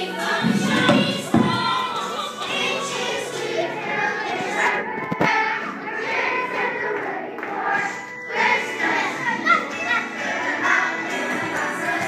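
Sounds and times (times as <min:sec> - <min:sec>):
children singing with music: 0:00.0 - 0:12.0
thump: 0:00.4 - 0:01.7.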